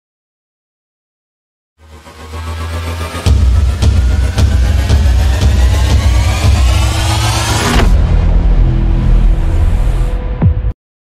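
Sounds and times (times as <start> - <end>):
rising whoosh: 1.8 - 10.4
heavy pulsing bass: 1.8 - 10.7
low bass drone: 1.8 - 10.7.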